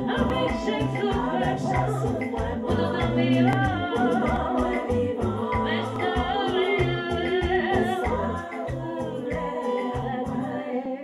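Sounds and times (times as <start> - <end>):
low regular beat: 0.0 - 10.2
woman singing gospel: 0.0 - 11.0.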